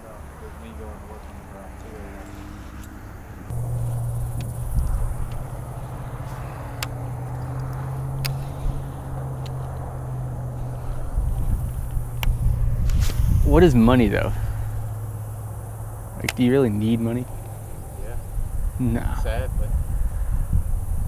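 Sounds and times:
boat motor humming: 1.0 - 18.7
sharp clicks: 2.8 - 5.6, 6.7 - 8.5, 11.6 - 13.0.

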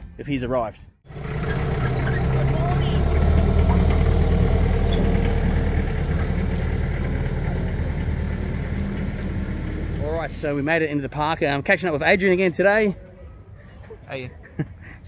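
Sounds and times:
tractor engine running: 1.1 - 10.6.

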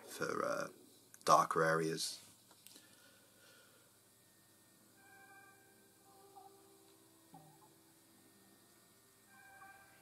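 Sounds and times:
faint steady tones: 0.0 - 10.0.

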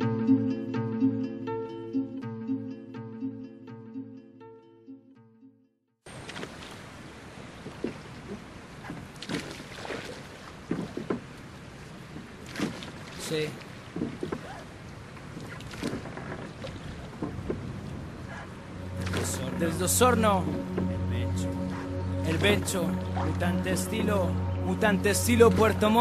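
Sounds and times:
water rushing: 6.1 - 26.0
wind noise: 13.7 - 19.6.

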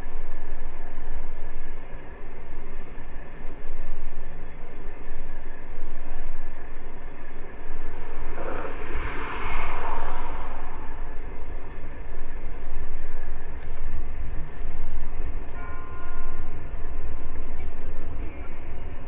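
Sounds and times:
loud rushing noise: 7.8 - 12.7.

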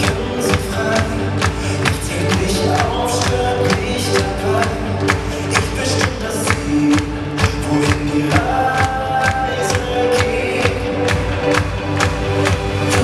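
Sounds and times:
pop song with dance beat: 0.0 - 13.0
men singing as a group: 5.6 - 11.1.

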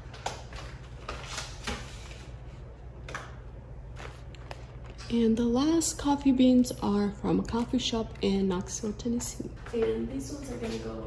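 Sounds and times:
paper bags rustling: 0.0 - 2.6, 3.8 - 5.2
low room hum: 0.0 - 11.0.

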